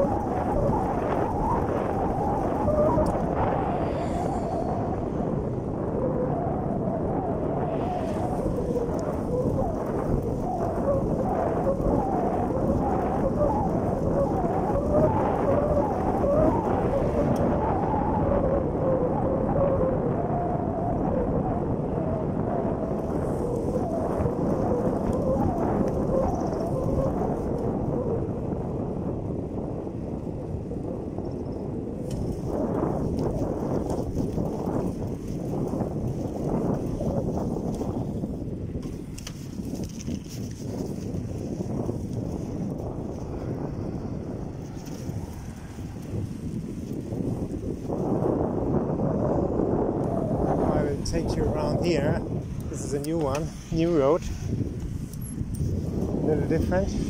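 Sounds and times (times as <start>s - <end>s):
wind rushing over microphone: 0.0s - 57.0s
tyres rumbling on asphalt: 22.6s - 57.0s.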